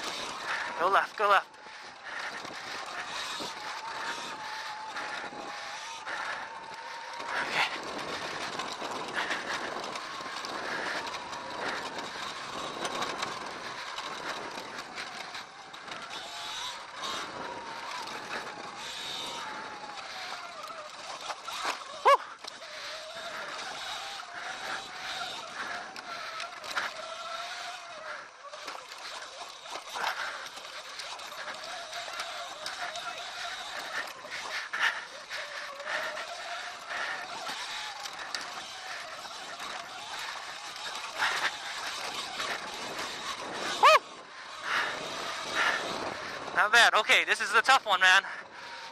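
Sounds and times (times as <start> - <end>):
electric dirt bike motor whining: 0.0 - 48.9
tyre and trail noise: 0.0 - 48.9.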